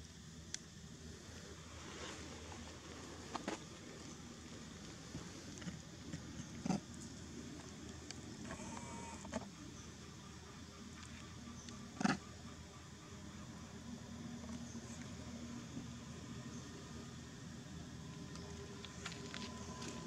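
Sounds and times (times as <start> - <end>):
faint pitched call: 8.4 - 9.5.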